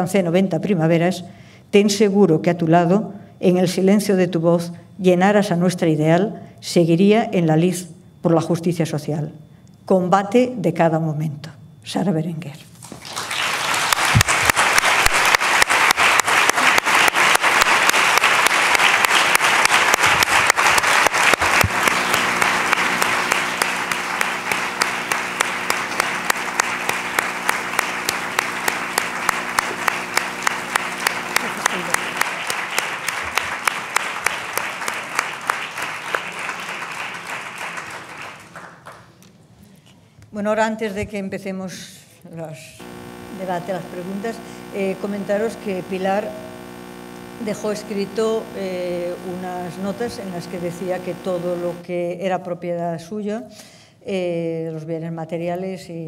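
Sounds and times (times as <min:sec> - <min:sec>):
large audience applauding: 0:12.8 - 0:39.1.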